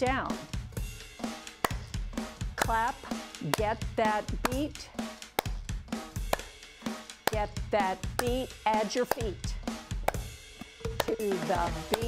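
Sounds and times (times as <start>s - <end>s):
drum-kit backing music: 0.0s - 12.0s
hand claps: 1.6s - 2.0s, 2.6s - 2.8s, 3.4s - 3.8s, 5.3s - 5.6s, 6.2s - 6.6s, 7.2s - 7.5s, 8.2s - 9.4s, 10.0s - 12.0s.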